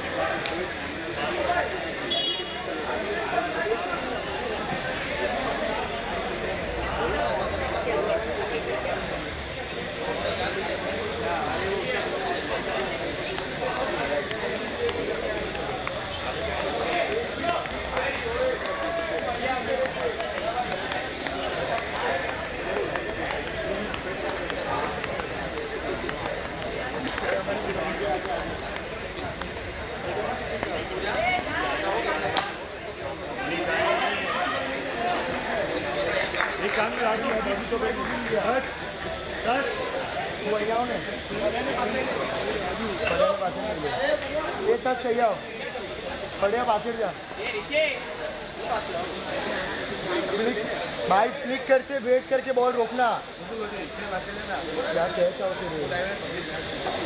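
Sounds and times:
people talking: 0.0s - 57.0s.

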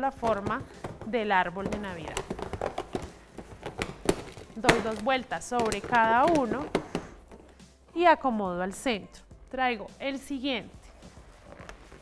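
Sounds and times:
balloons rubbing and squeaking: 10.8s - 12.0s.

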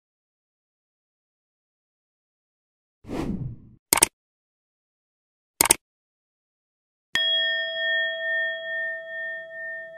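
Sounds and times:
bright chime ringing: 7.2s - 9.9s.

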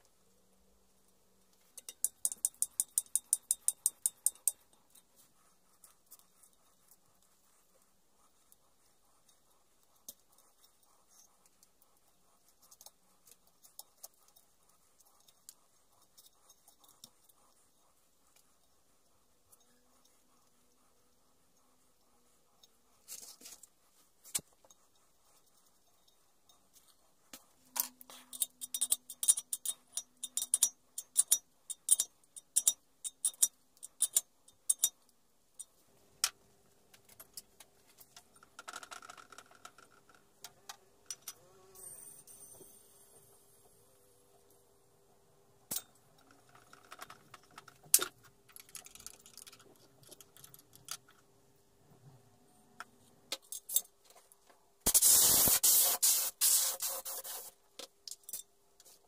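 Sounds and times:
faint steady hum: 0.0s - 55.6s
metal fittings clicking and clinking: 1.6s - 5.1s, 27.7s - 35.0s
compressed air hissing: 54.9s - 57.5s.

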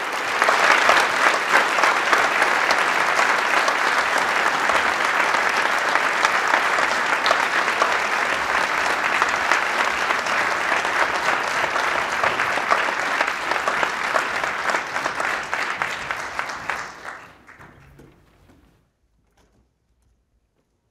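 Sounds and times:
audience applauding: 0.0s - 18.7s.

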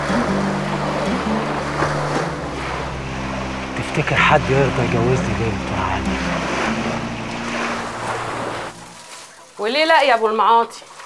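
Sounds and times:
low steady tone: 0.0s - 9.3s
small waves washing onto shore: 0.0s - 11.0s.

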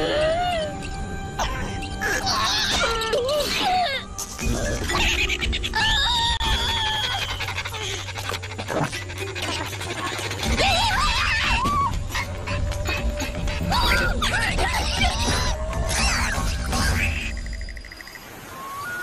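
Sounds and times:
high wavering cartoon vocals: 0.0s - 17.5s.

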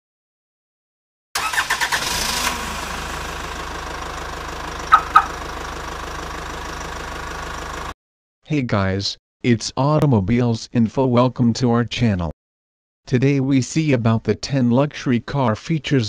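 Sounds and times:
car engine starting and idling: 1.4s - 8.0s.

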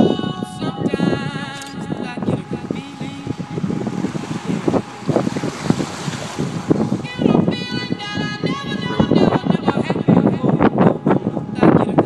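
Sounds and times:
wind buffeting microphone: 0.0s - 12.0s
water sloshing and splashing: 2.5s - 7.6s.

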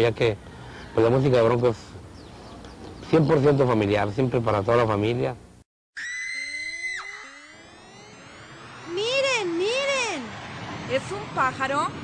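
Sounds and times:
high whistle-like electronic tone: 6.0s - 10.1s
low electronic tones sweeping upward: 6.0s - 11.4s.

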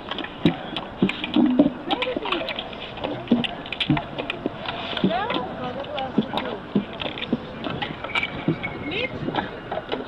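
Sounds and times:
footsteps on stone paving: 0.0s - 10.0s
people talking: 1.9s - 3.5s, 5.0s - 6.6s, 8.8s - 9.6s.

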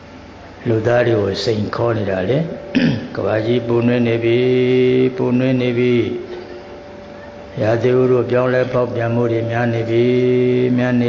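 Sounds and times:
person chanting: 0.6s - 11.0s.

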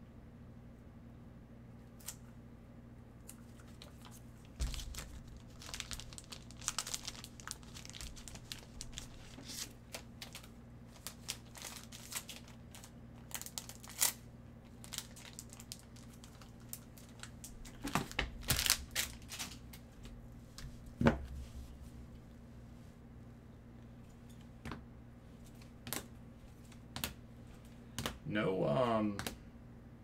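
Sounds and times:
faint low hum: 0.0s - 30.0s
plastic crinkling and rustling: 3.4s - 21.8s.

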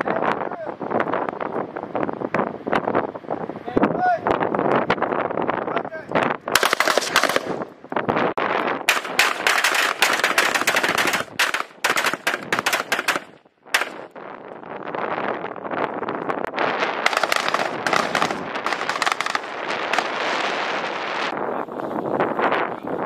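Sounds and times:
rifles firing in volleys: 6.6s - 7.7s, 8.8s - 14.1s, 17.0s - 20.6s.

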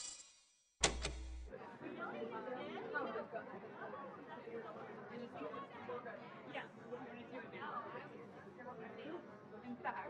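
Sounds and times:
crowd of people talking: 1.5s - 10.0s.

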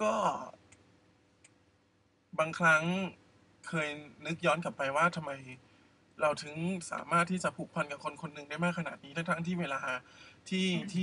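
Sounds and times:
faint sharp clicks: 0.7s - 1.6s
man saying a word: 10.5s - 11.0s.

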